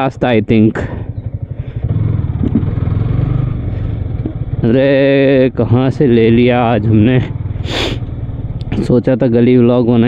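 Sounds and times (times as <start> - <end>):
motorcycle engine at low speed: 0.0 - 10.0.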